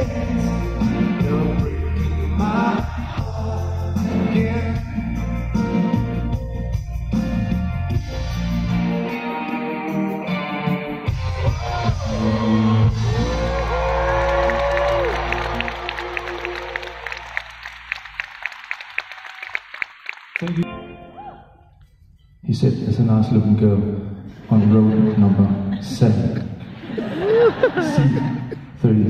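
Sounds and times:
pop-rock band playing: 0:00.0 - 0:17.0
audience cheering with whoop: 0:11.4 - 0:20.0
audience clapping: 0:12.4 - 0:20.6.

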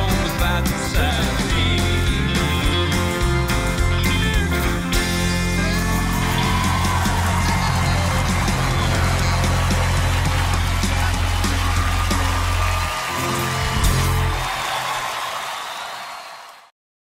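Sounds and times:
crowd applause and cheering: 0:00.0 - 0:16.8.

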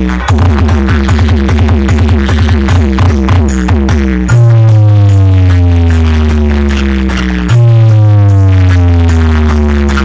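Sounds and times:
loud electronic dance music: 0:00.0 - 0:10.0.

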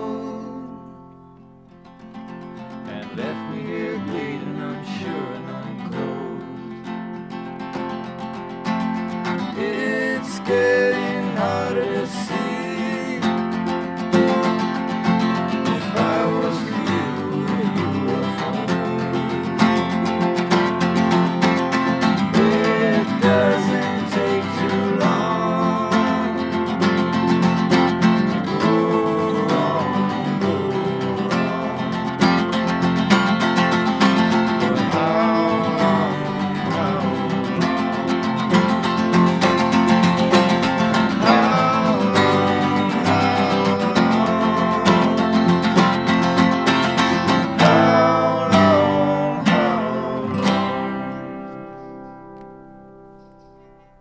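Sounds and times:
acoustic guitars strummed: 0:00.0 - 0:54.0.

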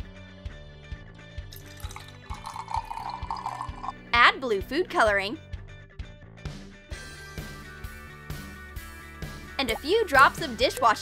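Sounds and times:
water pouring into glass jar: 0:01.5 - 0:04.0.

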